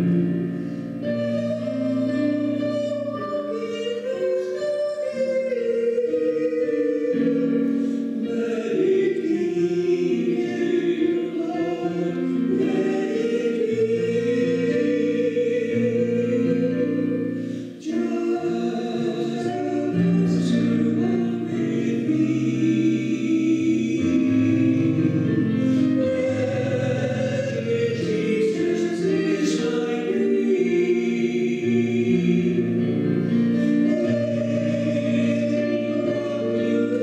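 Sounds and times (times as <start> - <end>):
man and woman singing a hymn: 0.0 - 37.0
pipe organ chords: 0.0 - 37.0.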